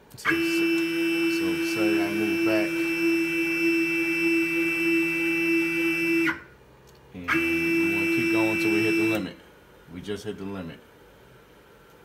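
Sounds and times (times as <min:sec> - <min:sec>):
stepper motor whine: 0:00.2 - 0:06.5, 0:07.3 - 0:09.3.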